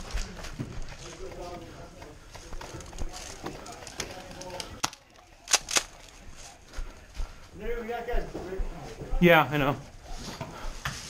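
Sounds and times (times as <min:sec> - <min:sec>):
sharp cracks: 0:04.4 - 0:06.1.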